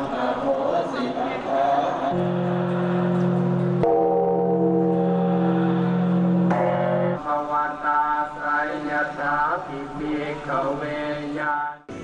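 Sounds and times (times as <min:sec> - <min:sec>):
large bell ringing deeply: 0:02.2 - 0:07.4.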